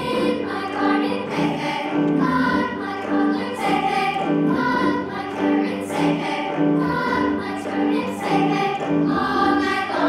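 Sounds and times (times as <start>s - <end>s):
children's choir singing: 0.0s - 10.0s
piano: 0.0s - 10.0s.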